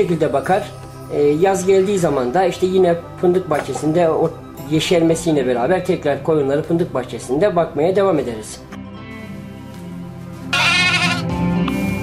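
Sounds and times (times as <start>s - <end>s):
lamb bleating: 10.5s - 11.3s.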